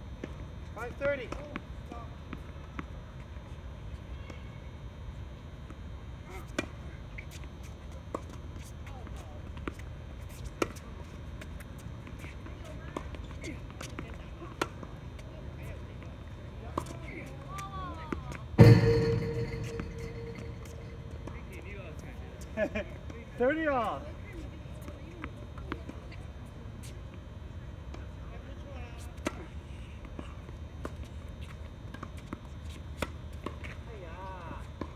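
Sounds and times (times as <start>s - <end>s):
loud impact with ringing tail: 18.6s - 21.5s
tennis balls struck by rackets: 18.6s - 21.6s.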